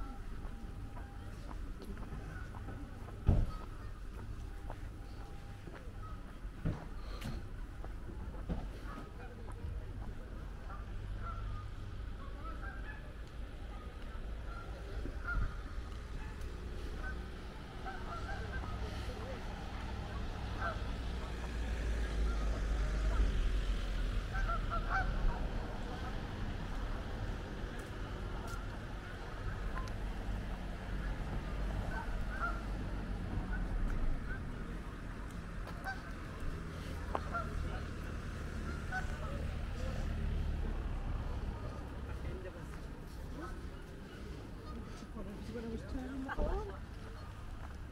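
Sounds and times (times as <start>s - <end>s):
geese honking: 10.6s - 13.3s, 14.1s - 27.0s, 30.8s - 35.0s, 35.6s - 40.2s
waterfowl calling: 14.4s - 26.2s, 31.0s - 32.8s, 37.1s - 37.8s, 38.4s - 40.1s.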